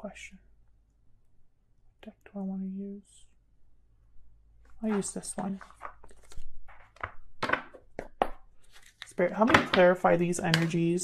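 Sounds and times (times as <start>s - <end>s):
cards tapping and scraping: 4.9s - 10.9s.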